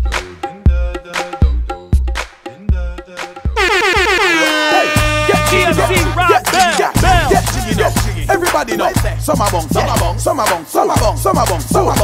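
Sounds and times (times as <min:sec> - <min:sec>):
horn sound effect sweeping down: 0:03.6 - 0:06.4
dj mix music: 0:03.6 - 0:12.0
drum hits: 0:05.0 - 0:10.1.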